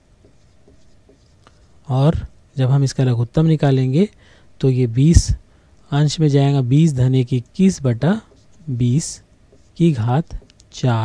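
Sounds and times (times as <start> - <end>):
handwriting scratching: 0.2 - 1.6, 9.5 - 10.0.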